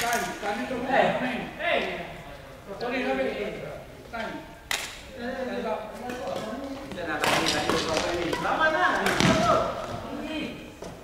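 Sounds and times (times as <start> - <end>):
voices echoing in a hall: 0.0 - 11.0.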